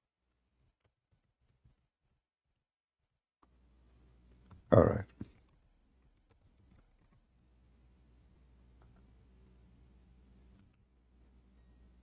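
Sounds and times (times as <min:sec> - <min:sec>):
low steady hum: 0:03.4 - 0:12.0
computer mouse clicks: 0:04.3 - 0:07.5, 0:10.5 - 0:10.9.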